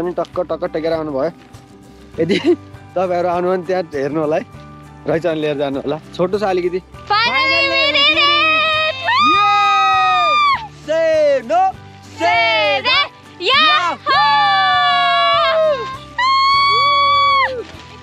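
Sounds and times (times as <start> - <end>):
low musical accompaniment: 0.0 - 18.0.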